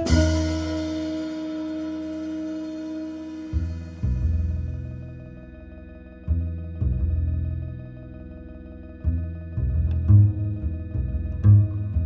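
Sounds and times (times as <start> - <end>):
sustained low note: 0.0 - 12.0.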